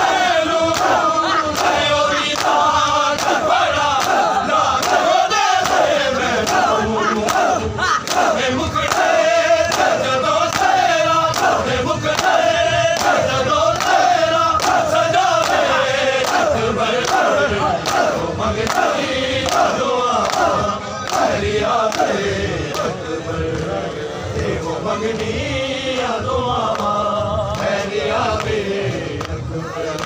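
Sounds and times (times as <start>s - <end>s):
crowd of men chanting: 0.0s - 30.0s
hands slapping chests: 0.7s - 12.4s, 13.0s - 13.2s.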